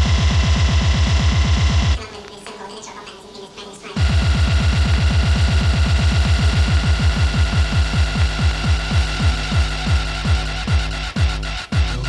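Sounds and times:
fast pounding drum roll: 0.0s - 2.0s, 4.0s - 12.0s.

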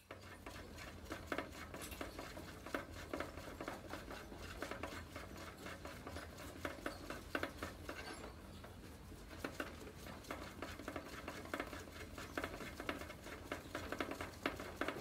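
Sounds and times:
small clicks taps and rustles: 0.0s - 15.0s.

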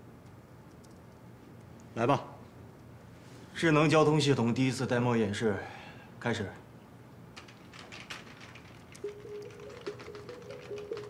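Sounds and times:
computer keyboard clicking: 7.4s - 11.0s.

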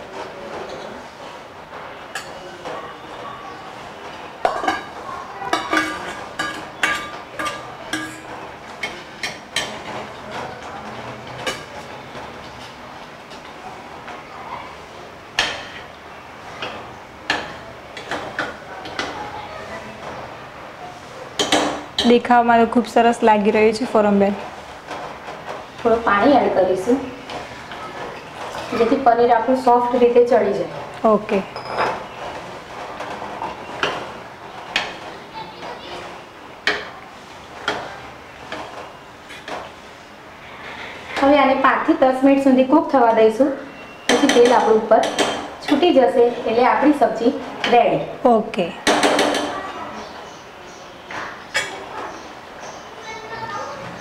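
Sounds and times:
metal spoon clinking on pans: 4.4s - 11.8s, 21.4s - 22.2s, 31.5s - 32.2s, 43.8s - 45.9s.

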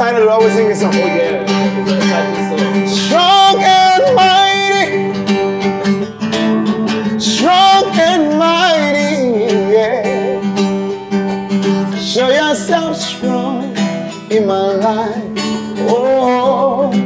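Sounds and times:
man singing gospel: 0.0s - 10.7s, 11.9s - 17.0s
acoustic guitar strumming: 0.0s - 17.0s.

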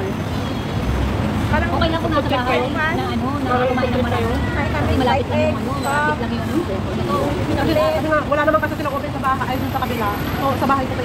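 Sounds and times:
women talking: 1.5s - 11.0s.

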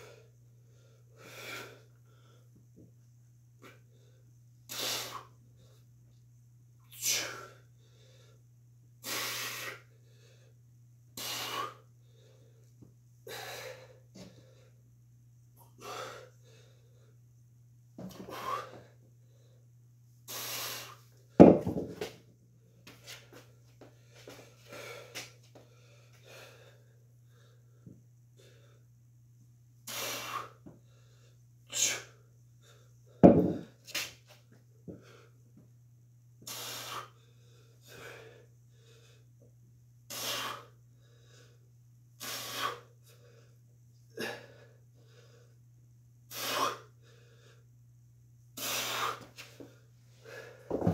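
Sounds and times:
man breathing hard: 0.0s - 2.6s, 6.9s - 10.6s, 11.2s - 14.8s, 15.6s - 17.2s, 18.1s - 19.7s, 23.8s - 28.9s, 34.9s - 35.4s, 36.4s - 39.4s, 40.1s - 45.6s, 46.3s - 47.7s, 48.6s - 50.9s
steady low hum: 0.0s - 50.9s.

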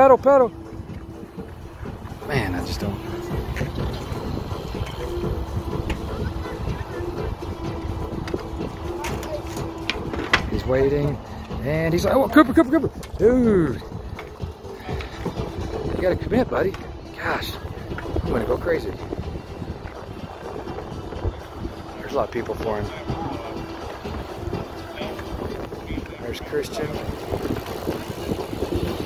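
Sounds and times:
wind buffeting microphone: 0.0s - 29.0s
faint indistinct voices: 2.2s - 16.0s, 16.8s - 29.0s.

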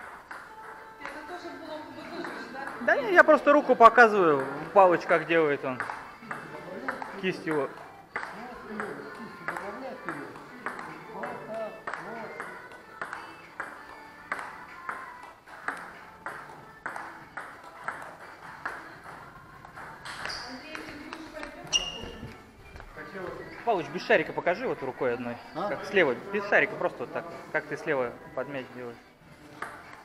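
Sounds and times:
table tennis balls clicking: 0.0s - 1.3s, 2.1s - 22.9s, 29.5s - 30.0s.

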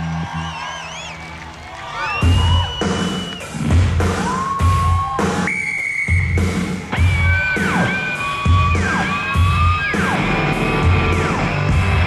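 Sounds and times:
heavy low beat: 6.4s - 12.0s.

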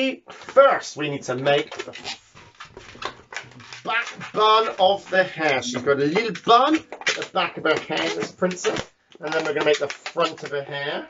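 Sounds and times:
rubber balloon rubbing: 0.4s - 11.0s
soft balloon clicks: 1.6s - 10.6s.

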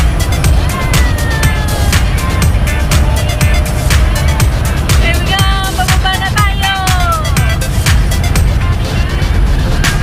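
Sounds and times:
background music with heavy bass: 0.0s - 10.0s.

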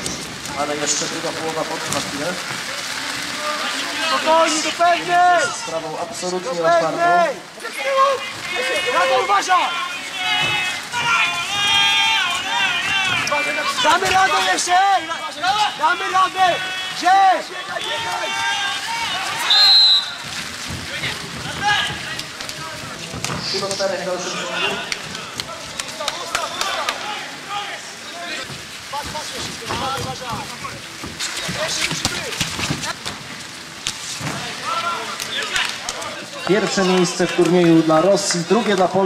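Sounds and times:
rain falling: 0.0s - 39.0s
people shouting and calling: 2.6s - 33.0s, 34.1s - 39.0s.

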